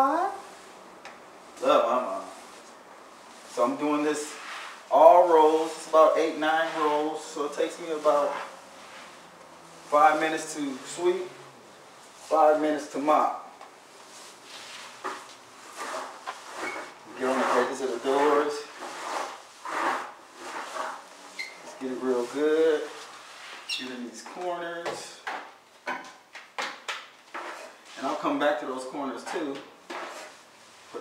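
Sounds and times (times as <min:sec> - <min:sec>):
wet mop swishing on concrete: 0:02.2 - 0:11.3, 0:14.0 - 0:23.7, 0:29.2 - 0:31.0.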